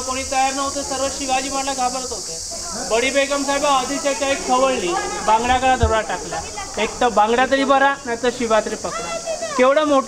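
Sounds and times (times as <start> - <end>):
high-pitched hiss: 0.0 - 10.0.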